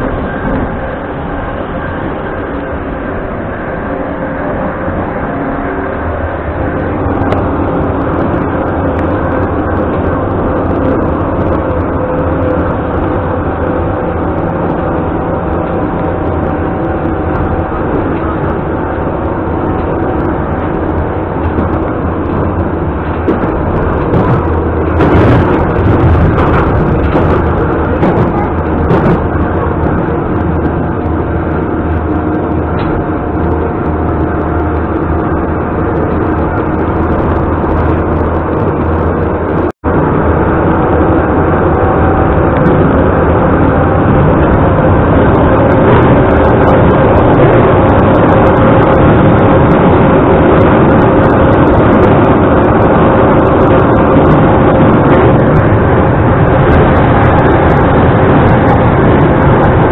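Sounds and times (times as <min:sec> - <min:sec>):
metro train rolling inside carriage: 0:00.0 - 0:59.9.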